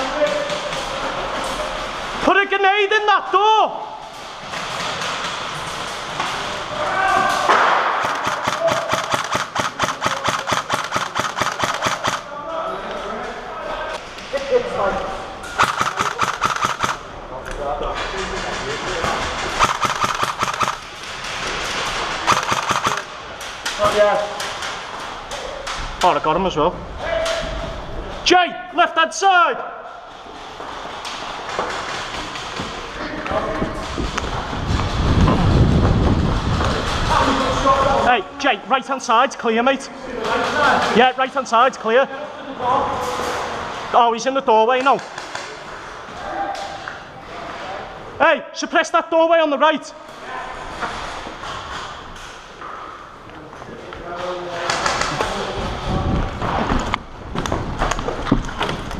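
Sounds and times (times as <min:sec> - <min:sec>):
footsteps: 0:04.0 - 0:26.4, 0:29.8 - 0:38.1
airsoft rifle rapid shots: 0:07.9 - 0:12.3, 0:15.6 - 0:17.1, 0:19.5 - 0:20.9, 0:22.2 - 0:23.2
gear rubbing: 0:18.2 - 0:23.1.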